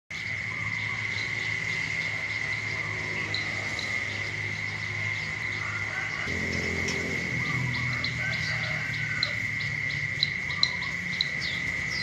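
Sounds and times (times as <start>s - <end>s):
high-pitched insect drone: 0.1s - 12.0s.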